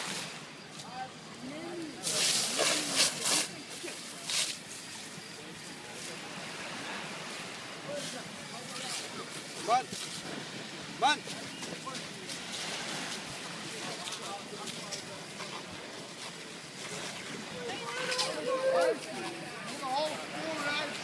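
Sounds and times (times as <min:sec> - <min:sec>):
indistinct voices of bystanders: 0:00.6 - 0:21.0.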